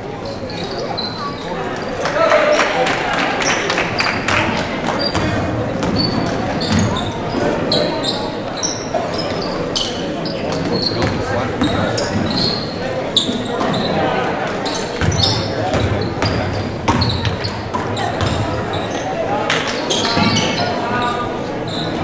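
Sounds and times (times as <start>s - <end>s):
sneakers squeaking: 0.0s - 2.7s, 3.4s - 22.0s
chatter of spectators: 0.0s - 22.0s.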